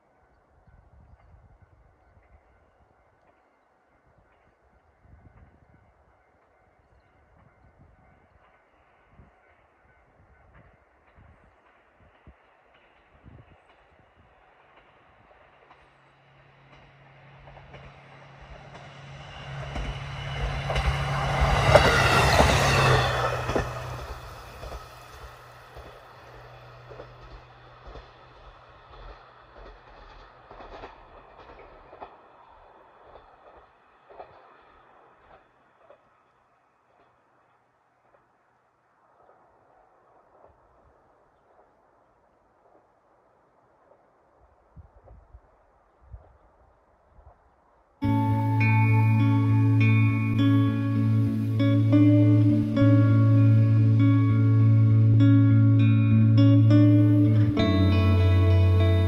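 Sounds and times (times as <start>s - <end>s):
diesel railcar passing: 0.0s - 42.2s, 48.0s - 59.0s.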